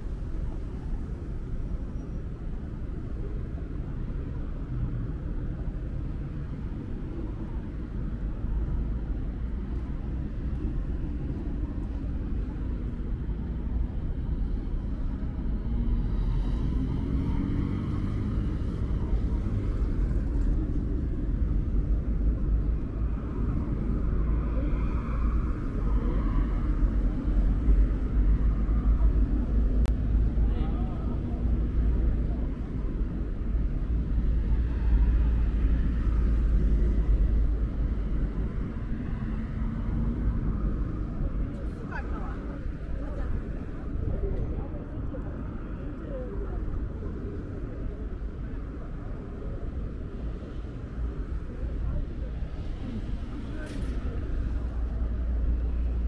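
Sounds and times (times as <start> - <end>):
traffic rumble: 0.0 - 56.0
people talking faintly: 22.4 - 56.0.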